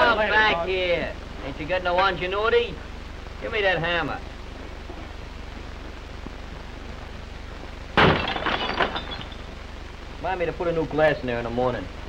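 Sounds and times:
old film soundtrack hum and hiss: 0.0 - 12.0
glass pane smashing: 8.0 - 9.6
glass shards tinkling: 8.2 - 9.6.

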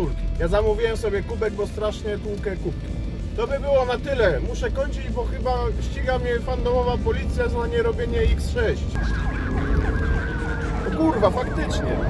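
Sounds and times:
police siren yelping: 8.8 - 12.0.

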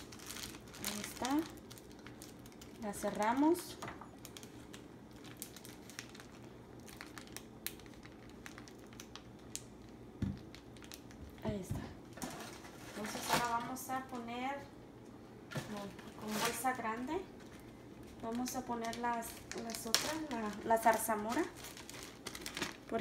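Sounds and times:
plastic bag crinkling: 0.0 - 14.3, 15.5 - 23.0.

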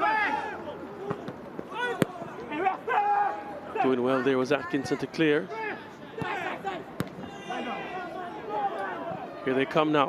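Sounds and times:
voices calling out: 0.0 - 9.8
football being kicked: 7.0 - 7.3.

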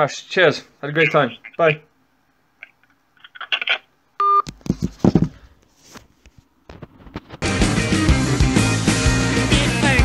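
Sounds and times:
electronic telephone beep: 4.2 - 4.5
rock music: 7.4 - 10.0.

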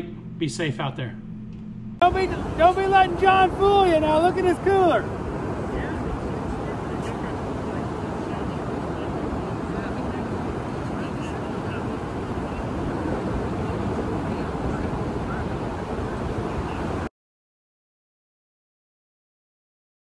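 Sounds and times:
ocean surf breaking: 2.0 - 17.1
wind on microphone: 2.0 - 17.1.

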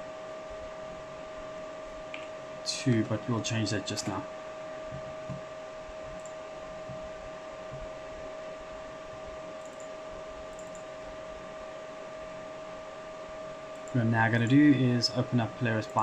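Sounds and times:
constant whine: 0.0 - 16.0
cooling fans whirring: 0.0 - 16.0
faint mouse clicks: 9.6 - 9.9, 10.5 - 10.9.

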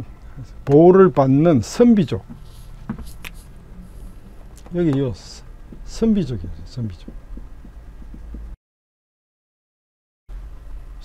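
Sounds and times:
low electrical hum: 0.0 - 8.6, 10.3 - 11.0
marker pen writing on whiteboard: 2.2 - 6.2, 6.8 - 8.6.

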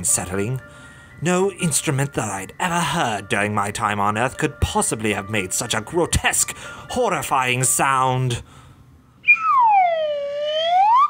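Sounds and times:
slide whistle swooping: 9.2 - 11.0.

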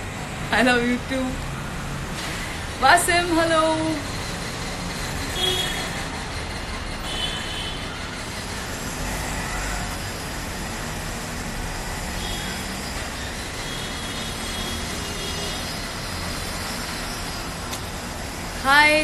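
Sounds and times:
distant road traffic rumble: 0.0 - 19.0.

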